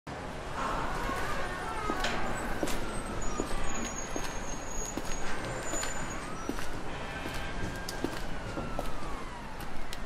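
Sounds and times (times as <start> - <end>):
road traffic rush: 0.1 - 10.0
thin high squeal: 0.6 - 6.5.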